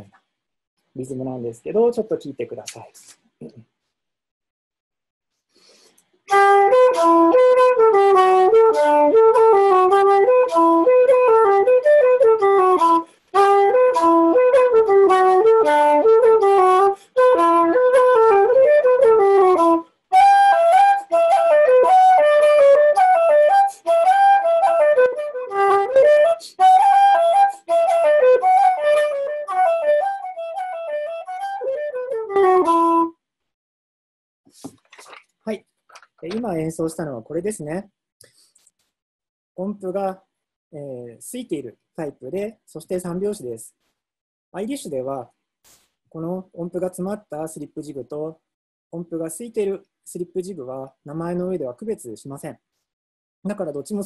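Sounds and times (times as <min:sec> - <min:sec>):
wooden flute playing a jig: 0:06.3 - 0:33.2.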